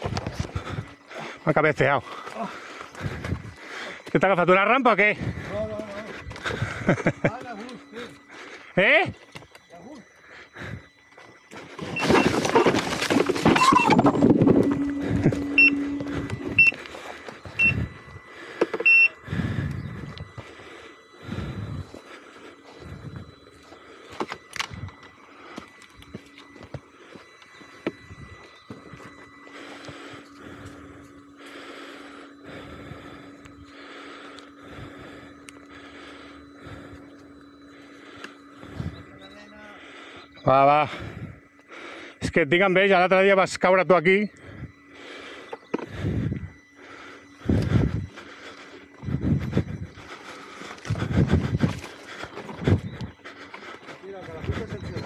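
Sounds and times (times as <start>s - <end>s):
electric motor hum: 0.0s - 55.0s
short beeps: 0.0s - 55.0s.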